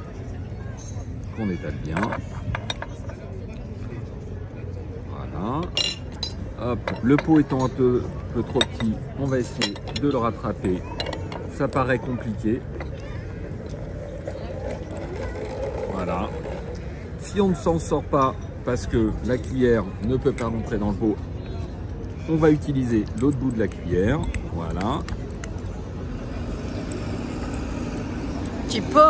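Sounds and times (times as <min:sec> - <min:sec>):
street traffic rumble: 0:00.0 - 0:29.0
vehicle engine humming: 0:06.4 - 0:17.6, 0:22.8 - 0:29.0.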